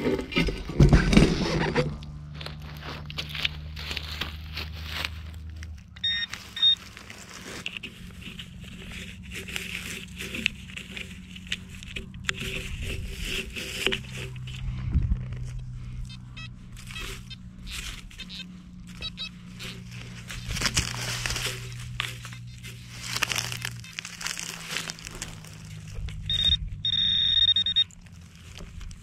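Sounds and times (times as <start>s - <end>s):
rustling dry stubble and soil: 0.0s - 29.0s
metal detector tone: 6.0s - 6.8s, 16.0s - 19.9s, 26.2s - 28.0s.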